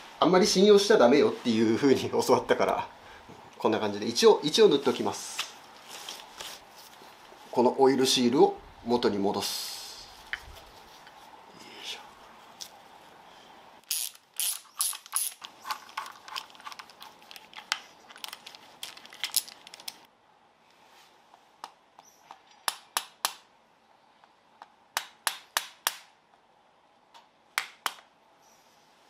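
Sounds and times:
ratcheting screwdriver clicking: 13.9 - 16.9.

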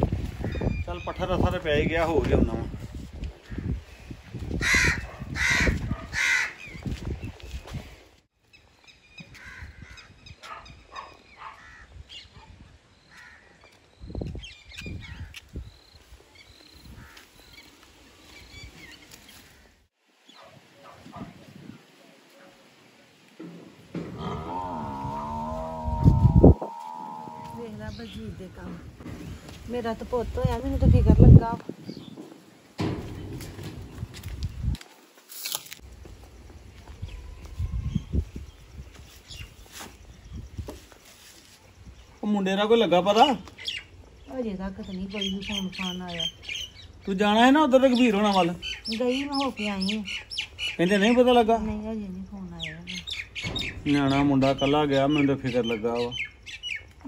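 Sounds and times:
birds squawking and chirping: 0.2 - 1.8, 3.4 - 7.3, 8.5 - 21.3, 23.9 - 29.6, 43.0 - 57.0
buffalo lowing: 23.8 - 29.0
bird falling call: 24.0 - 28.0.

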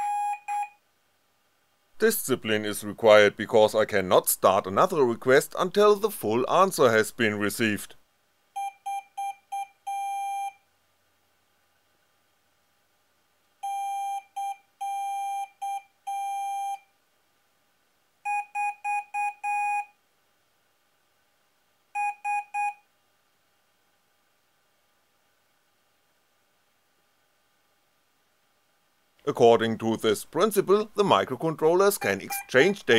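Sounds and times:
piezo buzzers beeping morse code: 0.0 - 0.7, 32.0 - 32.7.

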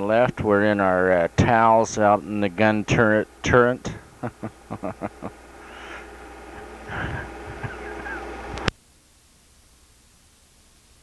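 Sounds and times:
electrical hum: 0.0 - 11.0
man laughing: 3.5 - 8.6.

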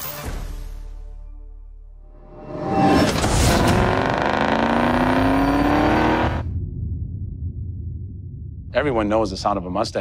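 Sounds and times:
car engine accelerating hard: 3.1 - 6.4.

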